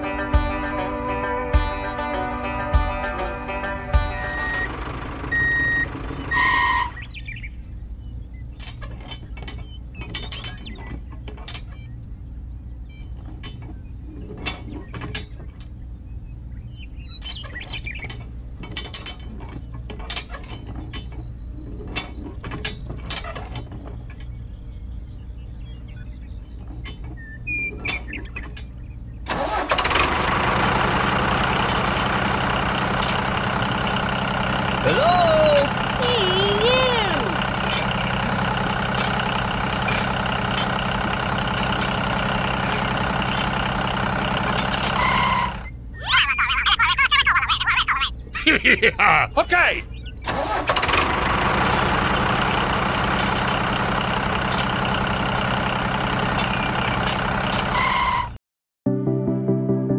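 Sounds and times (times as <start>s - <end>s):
music: 0.0s - 4.8s, 58.9s - 59.9s
tractor engine running: 0.0s - 14.4s, 28.0s - 45.9s, 49.4s - 58.4s.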